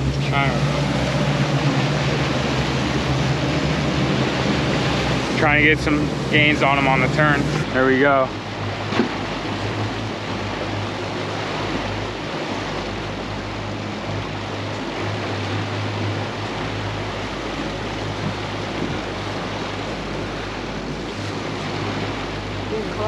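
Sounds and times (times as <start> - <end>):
outboard motors humming: 0.0 - 23.0
water rushing past hull: 0.0 - 23.0.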